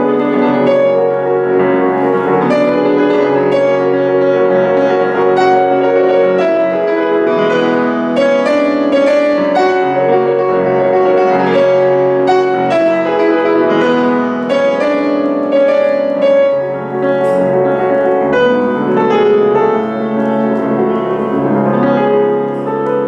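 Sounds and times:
solo piano playing: 0:00.0 - 0:23.0.

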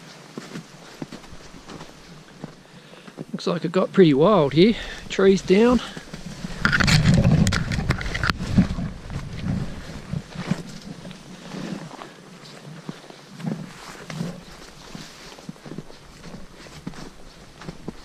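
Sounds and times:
footsteps crunching in snow: 0:00.0 - 0:03.4, 0:04.2 - 0:18.0.

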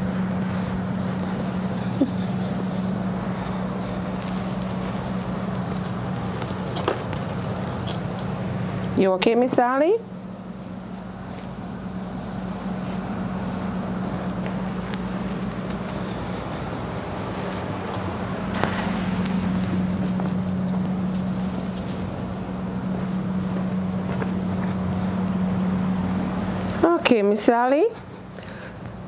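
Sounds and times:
machine hum: 0:00.0 - 0:29.0.

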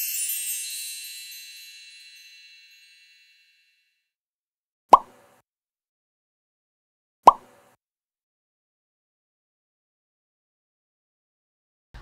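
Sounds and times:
plop sound effect: 0:07.2 - 0:07.5.

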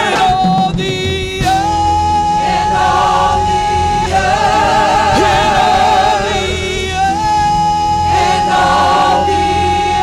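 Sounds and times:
gospel choir singing: 0:00.0 - 0:10.0.

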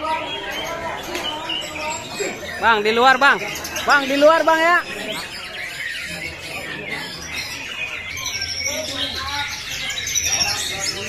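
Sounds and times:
birds whistling and chirping: 0:00.0 - 0:11.0
murmur of crowd: 0:00.0 - 0:11.0.

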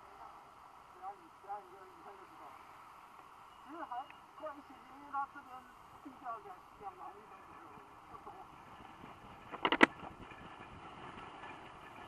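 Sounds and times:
car road and engine noise: 0:00.1 - 0:12.0.

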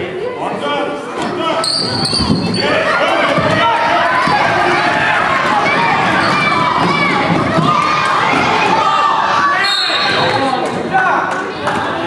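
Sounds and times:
children shouting: 0:01.7 - 0:10.5
crowd cheering: 0:02.6 - 0:10.7.

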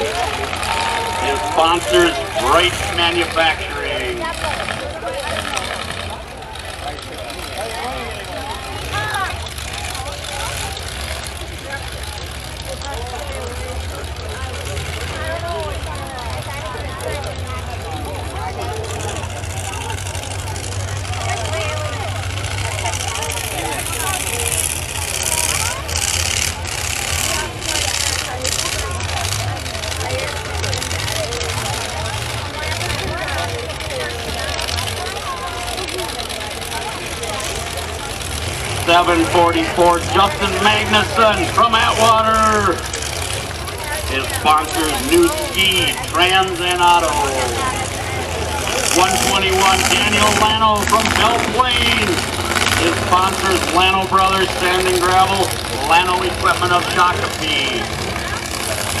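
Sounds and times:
crowd chatter: 0:00.0 - 0:59.0
truck engines rumbling: 0:00.0 - 0:59.0.

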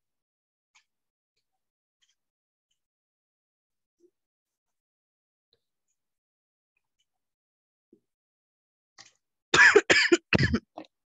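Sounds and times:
person coughing: 0:09.6 - 0:10.9.

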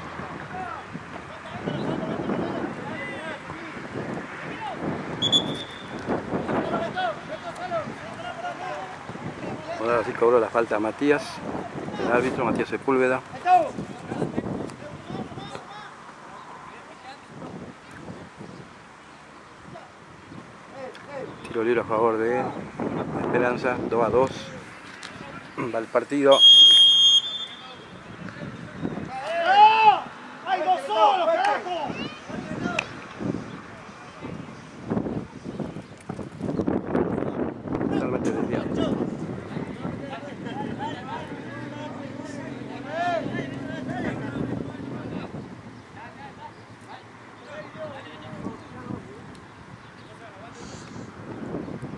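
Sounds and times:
referee's whistle blast: 0:05.2 - 0:06.0, 0:26.3 - 0:27.8
distant shouting: 0:26.3 - 0:28.1, 0:29.1 - 0:33.0, 0:40.0 - 0:48.4
people shouting: 0:29.2 - 0:32.2.

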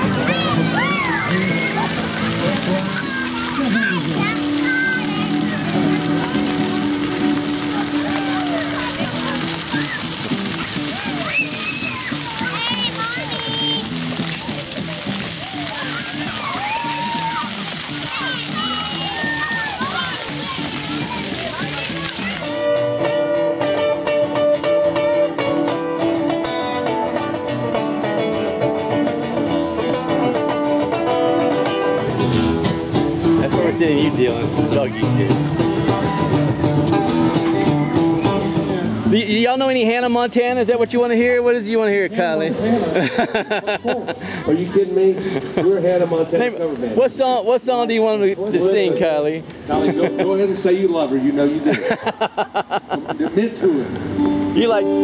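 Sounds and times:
children's voices: 0:00.0 - 0:22.8
music: 0:00.0 - 0:42.2, 0:49.0 - 0:51.0, 0:53.9 - 0:55.0
water jets spraying on paving: 0:00.0 - 0:55.0.

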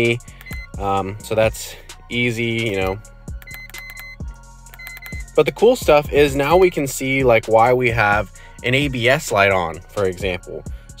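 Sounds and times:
quiet background music: 0:00.0 - 0:11.0
short high electronic beeps: 0:03.4 - 0:04.2, 0:04.8 - 0:05.4.

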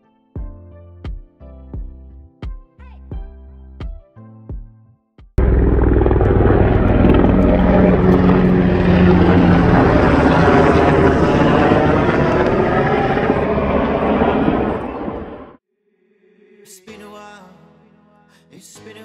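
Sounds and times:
helicopter flying overhead: 0:05.4 - 0:15.6.

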